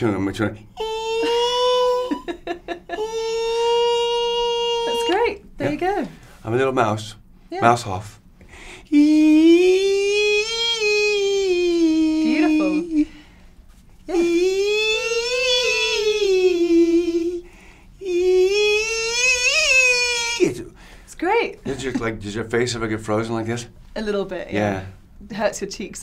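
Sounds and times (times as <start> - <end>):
man imitating a violin: 0.8 - 5.8, 8.9 - 13.2, 14.1 - 20.6.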